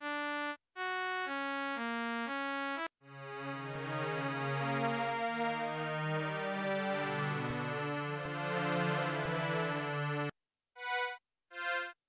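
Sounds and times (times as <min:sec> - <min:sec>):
synth string chords: 0:03.1 - 0:11.0.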